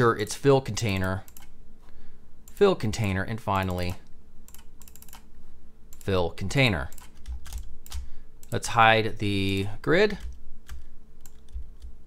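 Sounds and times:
computer keyboard keystrokes: 4.5s - 5.2s, 6.9s - 8.6s, 10.2s - 12.0s.

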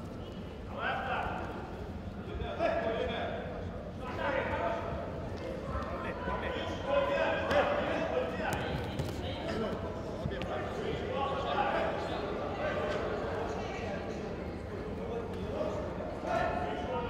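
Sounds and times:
voices calling out in echoing hall: 0.0s - 17.0s.

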